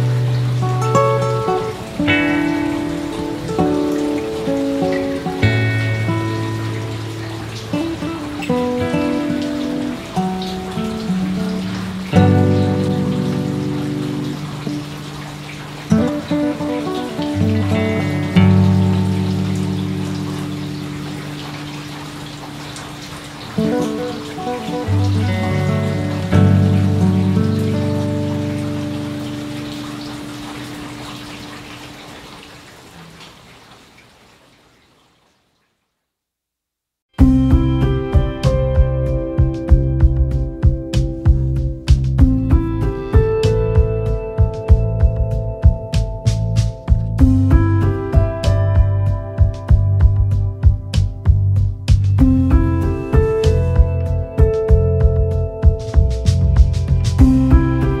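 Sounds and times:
slow acoustic guitar music: 0.0s - 32.0s, 37.2s - 58.0s
rain pattering: 0.0s - 36.0s, 37.2s - 58.0s.

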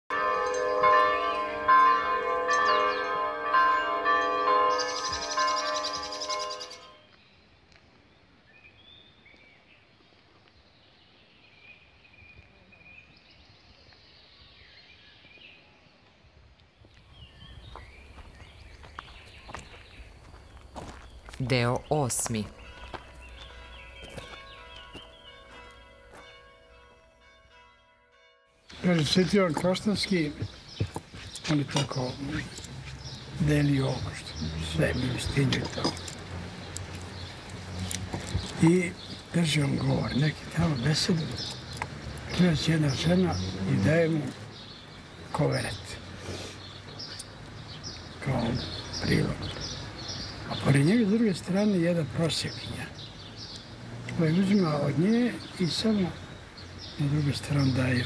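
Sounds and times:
church bells ringing: 0.1s - 7.1s, 22.4s - 30.5s, 31.6s - 37.7s, 38.5s - 44.3s
high chirping notes: 0.1s - 7.2s, 21.5s - 45.7s
faint birdsong: 0.1s - 28.0s, 28.6s - 58.0s.

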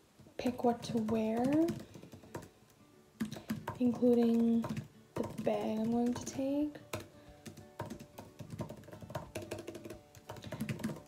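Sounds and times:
laptop keyboard typing: 0.4s - 2.6s, 3.2s - 11.0s.

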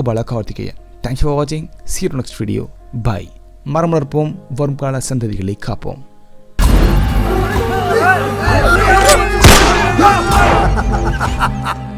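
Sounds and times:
dramatic trailer music: 6.6s - 11.9s
people shouting: 7.2s - 10.8s
loud gunshot: 9.4s - 10.6s.

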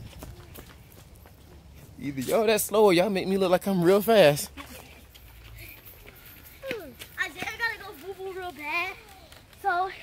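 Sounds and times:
child calling and chattering: 4.6s - 10.0s.

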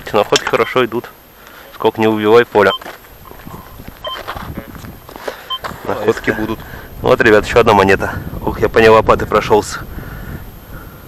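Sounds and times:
footsteps on dry earth: 2.5s - 6.9s
metal detector beeps: 2.6s - 6.6s.

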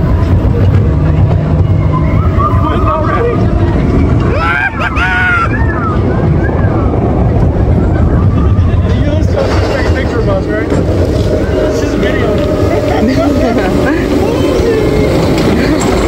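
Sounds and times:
roller coaster rumbling on track: 0.0s - 16.0s
wind on microphone: 0.0s - 16.0s
voices calling out: 10.6s - 16.0s.

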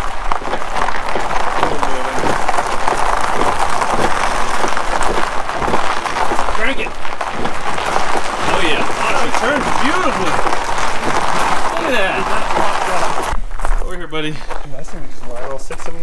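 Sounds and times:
tyres crunching on gravel: 0.0s - 16.0s.

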